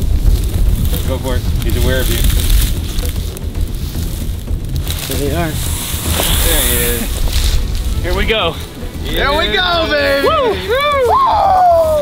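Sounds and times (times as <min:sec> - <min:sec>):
dry grass rustling: 0:00.0 - 0:12.0
wind buffeting microphone: 0:00.0 - 0:12.0.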